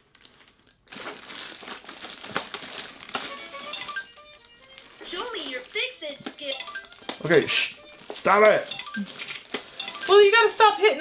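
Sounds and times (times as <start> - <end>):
plastic bag crinkling: 0.0 - 11.0
toy electronic tones: 3.3 - 4.4, 6.4 - 10.3.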